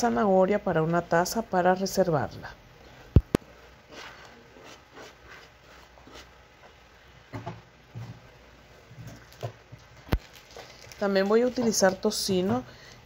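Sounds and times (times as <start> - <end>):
plastic wrap rustling: 8.8 - 12.6.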